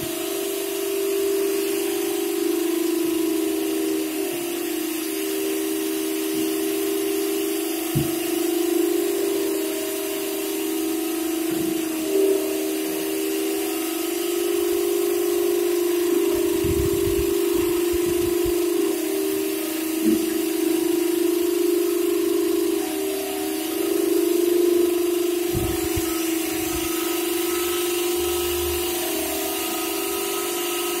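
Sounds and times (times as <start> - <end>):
wet vacuum running: 0.0 - 31.0.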